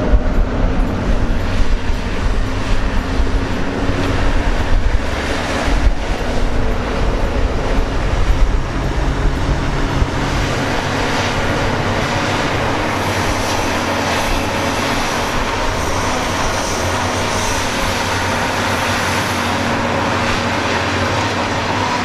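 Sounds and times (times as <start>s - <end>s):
heavy diesel machinery running: 0.0s - 22.0s.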